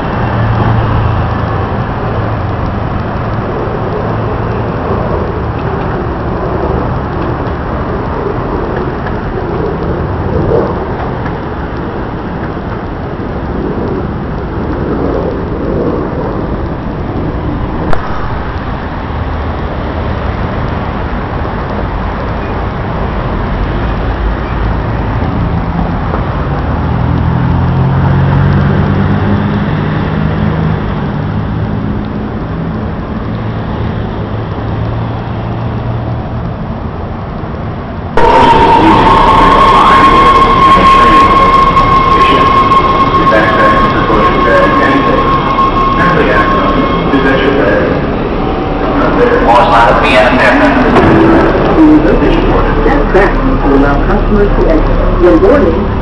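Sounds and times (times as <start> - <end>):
high whine: 0.0 - 26.8, 36.8 - 56.0
vehicle engine hum: 0.0 - 39.0
street traffic noise: 0.0 - 56.0
subway train in tunnel: 0.0 - 56.0.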